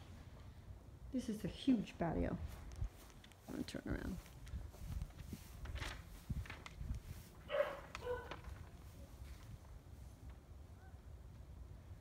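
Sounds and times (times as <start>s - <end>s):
footsteps on patio: 2.0s - 10.4s.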